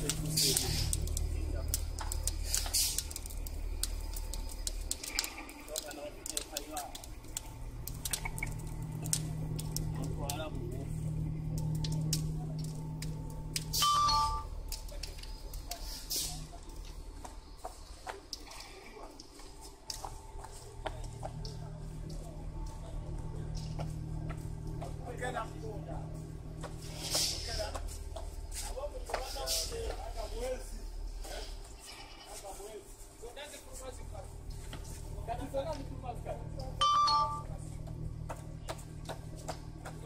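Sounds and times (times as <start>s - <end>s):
people talking: 0.0s - 3.2s, 4.4s - 7.4s, 8.1s - 19.5s, 20.4s - 31.6s, 32.3s - 40.0s
sharp clicks: 0.0s - 10.4s
low machinery hum: 0.0s - 40.0s
two-tone beep: 13.8s - 14.5s, 36.8s - 37.5s.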